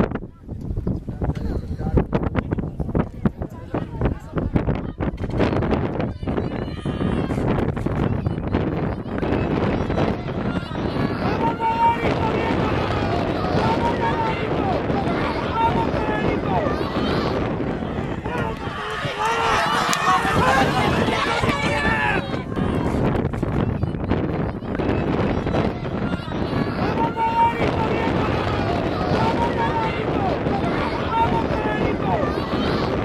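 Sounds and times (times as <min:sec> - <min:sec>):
wind rumbling on microphone: 0:00.0 - 0:33.0
spectators shouting: 0:05.8 - 0:33.0.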